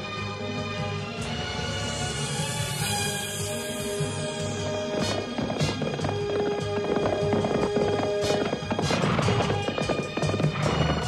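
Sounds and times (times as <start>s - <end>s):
action background music: 0.0s - 11.0s
galloping horse hoofbeats: 3.8s - 11.0s.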